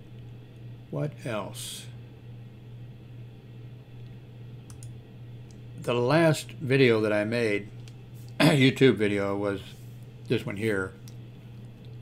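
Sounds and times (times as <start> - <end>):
steady low hum: 0.0 - 12.0
computer clicks: 4.7 - 5.6.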